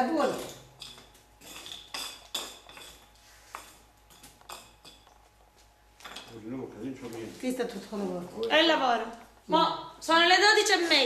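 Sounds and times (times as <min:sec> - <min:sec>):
light metallic clinks and knocks: 0:00.2 - 0:06.4.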